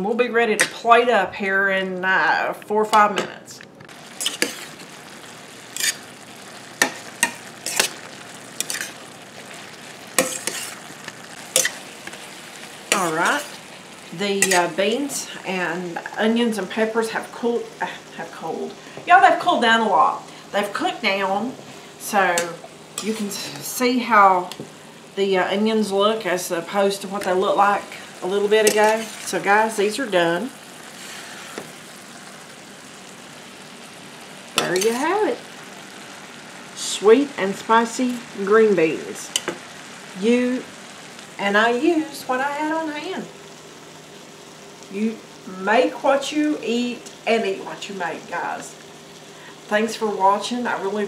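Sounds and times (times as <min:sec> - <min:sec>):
vegetables sizzling in a skillet: 0:03.9 - 0:51.0
spatula scraping a pan: 0:04.1 - 0:04.9, 0:05.7 - 0:06.1, 0:06.8 - 0:14.8, 0:28.6 - 0:29.4, 0:30.8 - 0:31.8.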